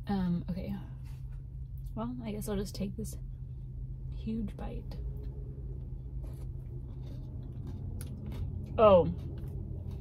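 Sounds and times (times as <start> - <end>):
chewing crunchy food: 6.3 - 10.0.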